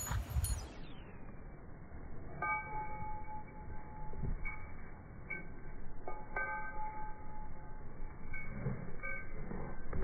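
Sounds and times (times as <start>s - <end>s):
bell-like ringing tone: 0.0s - 1.2s, 2.0s - 10.0s
faint outdoor background noise: 0.0s - 10.0s.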